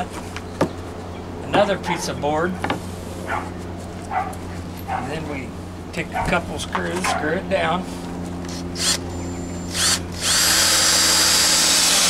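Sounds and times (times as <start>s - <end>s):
dog yipping barks: 3.3s - 5.1s.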